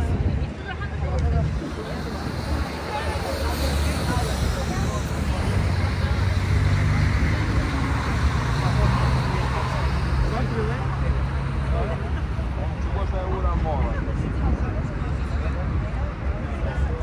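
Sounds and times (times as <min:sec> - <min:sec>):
crowd chattering: 0:00.0 - 0:17.0
cars passing: 0:00.7 - 0:17.0
bus engine running: 0:00.8 - 0:17.0.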